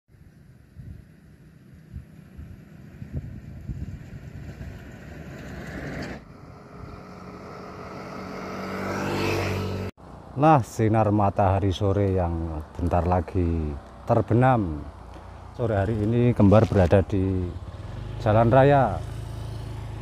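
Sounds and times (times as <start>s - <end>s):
vehicle engine: 0.8s - 10.4s, 11.7s - 20.0s.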